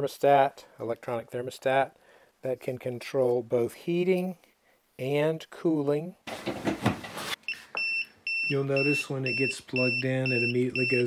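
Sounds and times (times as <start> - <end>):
thermostat alarm beeps: 7.4 - 11.0.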